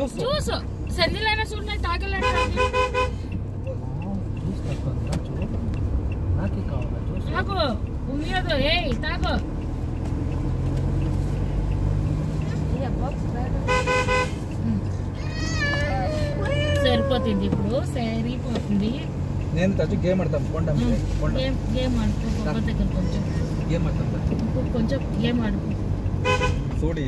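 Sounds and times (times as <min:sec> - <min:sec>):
car engine and road rumble: 0:00.0 - 0:27.0
car horn toots: 0:02.1 - 0:03.3, 0:13.6 - 0:14.5, 0:26.2 - 0:26.8.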